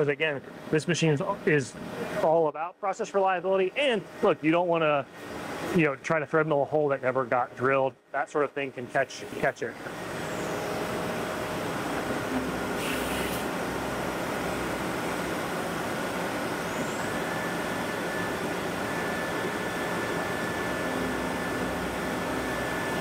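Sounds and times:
machine running with coolant spray: 8.5s - 23.0s
brief hiss: 12.8s - 13.5s.

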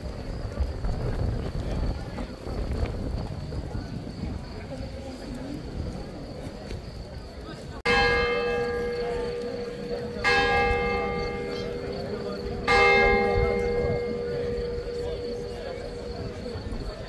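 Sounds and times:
church bell ringing: 7.9s - 17.0s.

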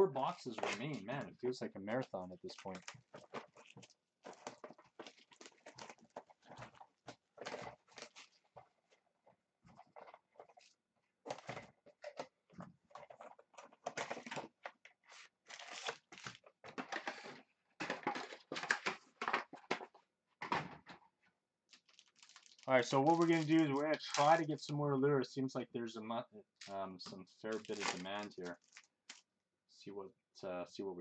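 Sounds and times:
packaging rustling and crinkling: 2.5s - 19.8s, 21.7s - 24.4s, 27.5s - 29.2s.

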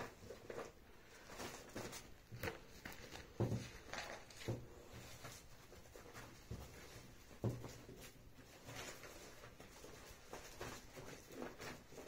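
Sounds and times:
faint soft taps and handling: 0.5s - 12.0s.

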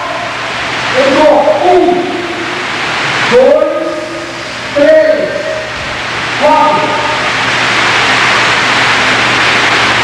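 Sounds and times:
loud steady hiss: 0.0s - 10.0s.

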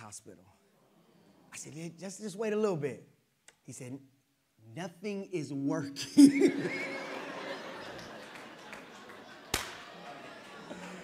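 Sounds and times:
sharp slap: 9.5s - 9.9s.

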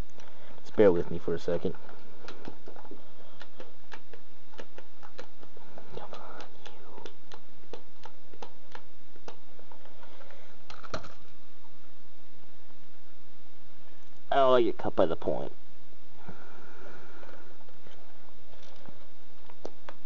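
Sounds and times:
steady low hum: 0.0s - 20.0s
objects clicking and tapping: 1.6s - 11.3s.

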